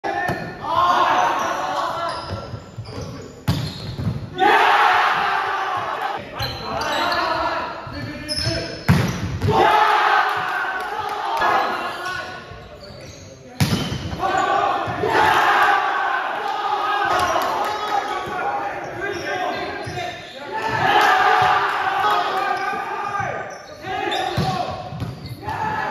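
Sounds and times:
players shouting: 0.1 - 2.3, 4.3 - 7.8, 9.4 - 12.4, 14.1 - 25.9.

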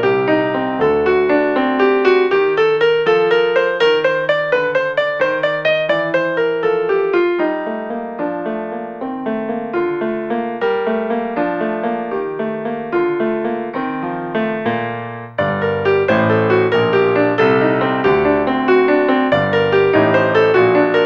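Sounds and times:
piano melody over chords: 0.0 - 21.0.

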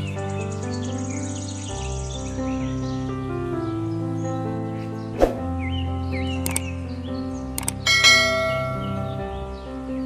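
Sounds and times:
mouse-click sound effects: 6.4 - 6.7, 7.6 - 7.8
bell chime: 7.9 - 9.2.

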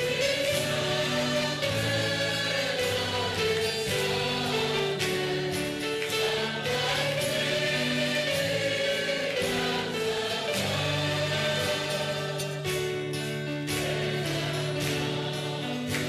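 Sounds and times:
instrumental accompaniment: 0.0 - 16.0
people singing worship song: 0.0 - 16.0.

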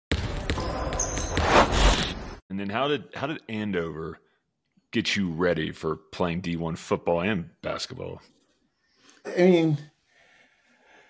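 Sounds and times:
basketball bouncing on gym floor: 0.1 - 1.4.

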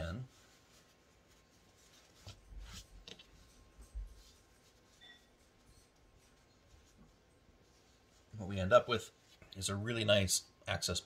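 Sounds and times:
cloth pad rustling: 0.0 - 11.0.

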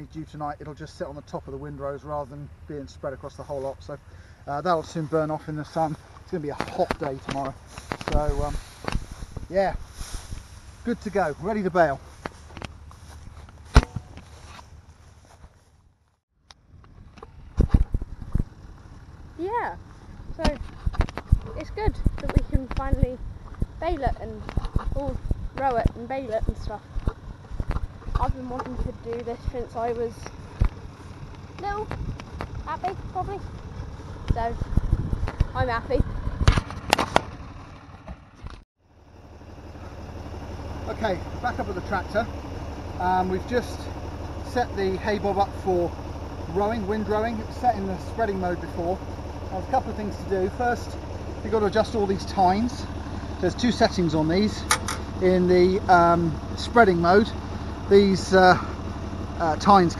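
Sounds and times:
tractor engine idling: 0.0 - 59.9.

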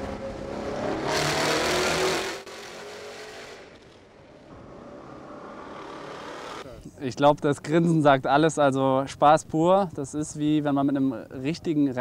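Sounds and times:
race car engine accelerating: 0.0 - 6.7.

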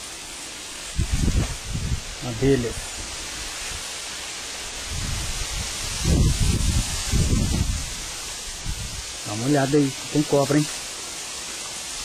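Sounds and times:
steady hiss: 0.0 - 12.0
microphone buffeting rumble: 0.9 - 3.9, 4.8 - 10.3.

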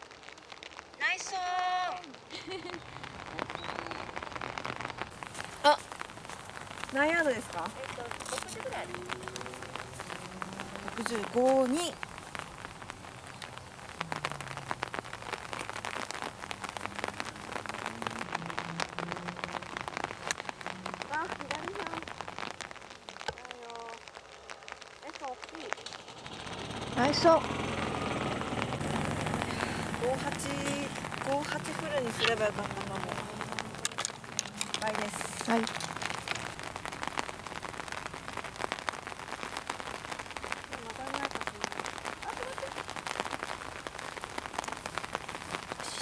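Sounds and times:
rain patter: 0.0 - 46.0.

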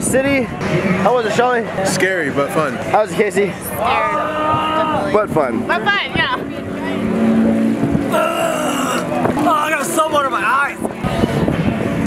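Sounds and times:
babble of many voices: 0.0 - 12.0
low steady rumble: 2.7 - 12.0
high wavering voice cry: 8.1 - 9.2.

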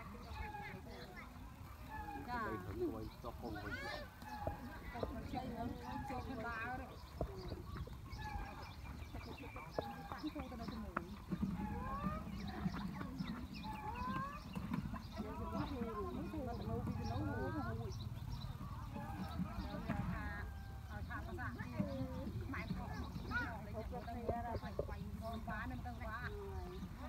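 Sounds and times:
distant voices calling and chattering: 0.0 - 27.0.

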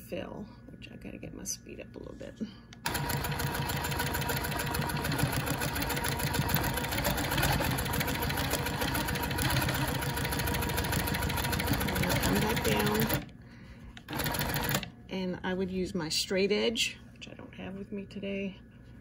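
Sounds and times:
quilting machine stitching: 2.8 - 13.3, 14.1 - 14.9.

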